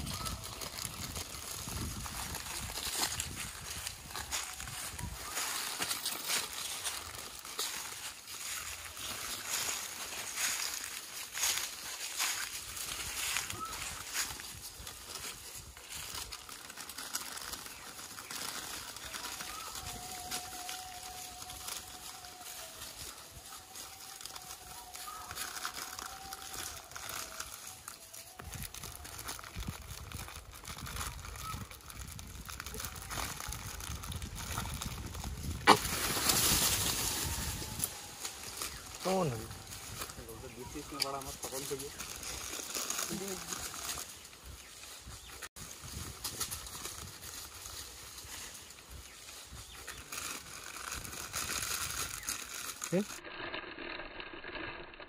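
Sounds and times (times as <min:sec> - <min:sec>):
rustling on plastic tarp: 0:00.0 - 0:54.6
faint voices: 0:18.6 - 0:31.8.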